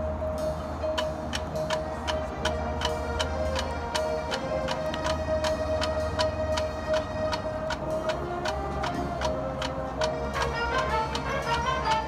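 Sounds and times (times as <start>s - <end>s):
marching band playing softly: 0.0s - 12.0s
percussion ticking: 0.0s - 12.0s.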